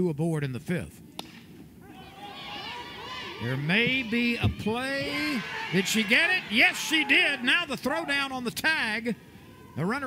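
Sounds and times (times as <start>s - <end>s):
crowd shouting: 1.8s - 10.0s.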